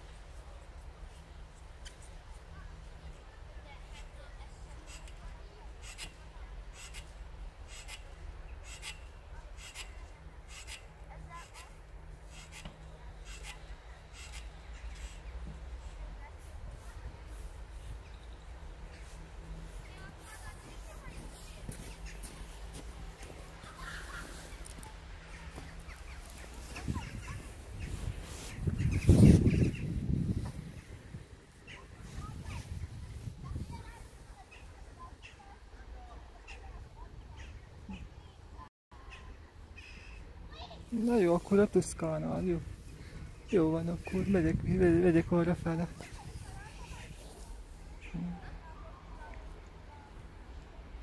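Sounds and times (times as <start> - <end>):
faint distant voices: 0.0 - 51.0
footsteps crunching in snow: 16.2 - 34.3.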